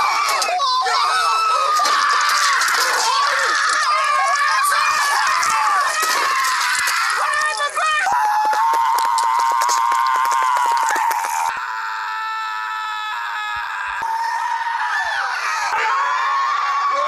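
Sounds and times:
cartoon characters screaming: 0:00.0 - 0:17.0.

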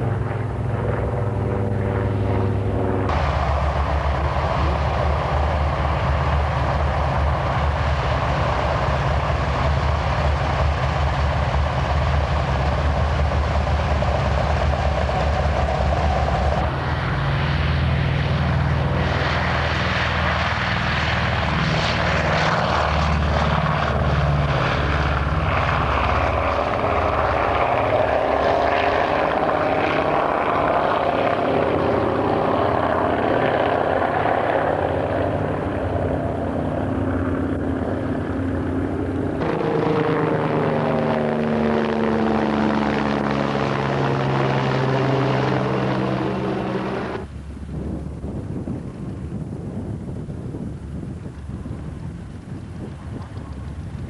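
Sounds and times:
helicopter flying overhead: 0:00.0 - 0:54.0
propeller plane engines: 0:00.0 - 0:54.0.

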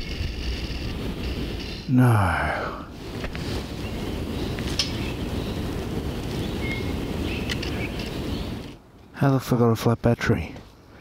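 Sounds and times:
wind buffeting microphone: 0:00.0 - 0:09.0
faint clicks: 0:07.4 - 0:09.1.

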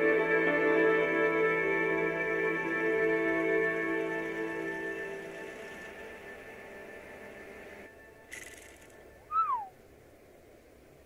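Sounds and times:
quiet film score music: 0:00.0 - 0:11.0
falling whistle-like call: 0:08.3 - 0:09.8.

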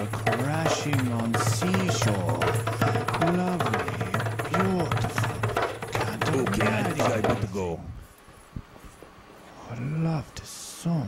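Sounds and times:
hand drum rhythm: 0:00.0 - 0:07.6.

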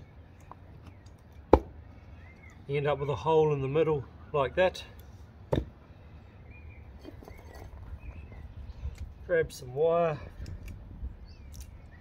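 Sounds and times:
log knocking on wooden stump: 0:05.5 - 0:05.7.

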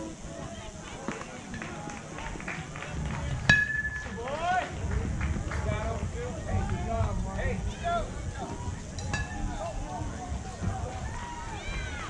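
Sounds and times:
spectators shouting and chattering: 0:00.0 - 0:12.0.

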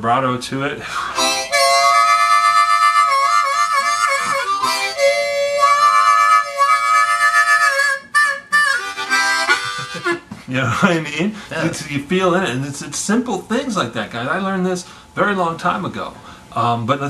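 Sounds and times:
blues harmonica with vibrato: 0:00.9 - 0:10.3.

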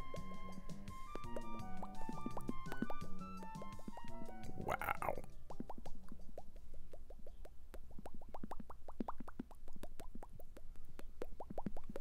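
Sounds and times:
cartoon bubble bloops: 0:01.0 - 0:12.0.

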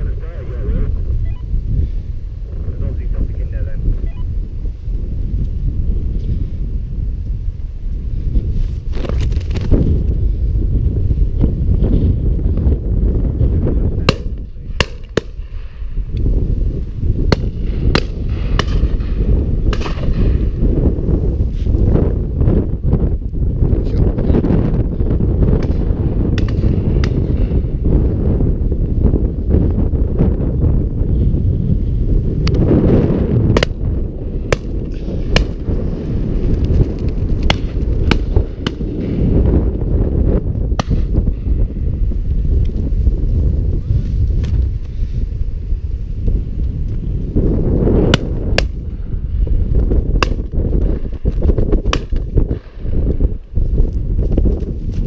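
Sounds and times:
wind buffeting microphone: 0:00.0 - 0:55.0
sharp clicks and cracks: 0:36.5 - 0:38.8.

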